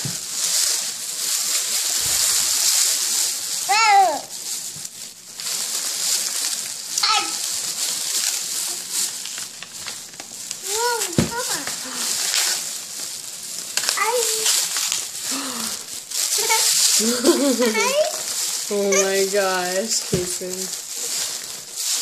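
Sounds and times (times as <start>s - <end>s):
plastic bag rustling: 0.0s - 22.0s
child's voice: 3.7s - 4.3s, 7.0s - 7.5s, 10.6s - 11.8s, 13.9s - 14.6s, 16.3s - 19.3s.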